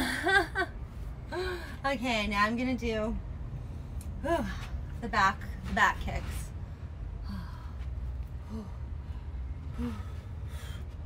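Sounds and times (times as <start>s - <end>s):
steady low rumble: 0.0s - 11.0s
woman breathing hard and gasping: 7.2s - 11.0s.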